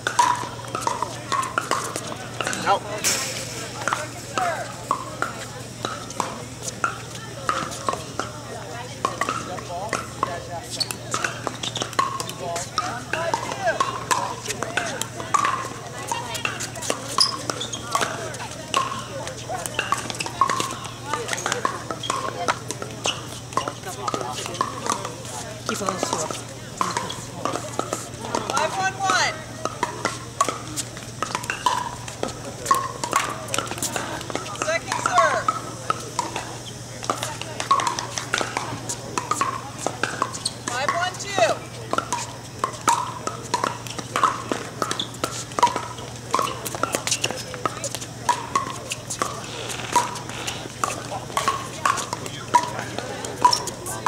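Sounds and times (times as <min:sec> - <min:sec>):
chatter of many people: 0:00.0 - 0:54.0.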